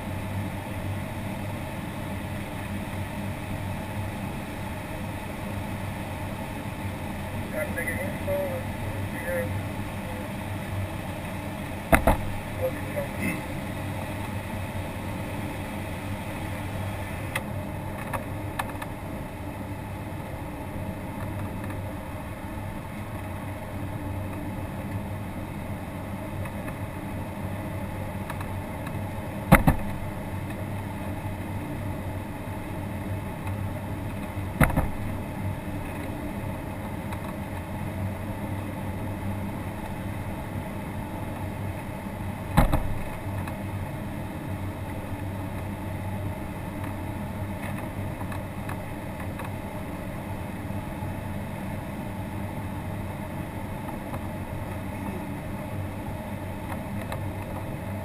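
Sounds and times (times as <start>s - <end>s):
airflow in glider cockpit: 0.0s - 58.0s
low steady hum: 0.0s - 58.0s
sharp knocks: 11.9s - 12.3s.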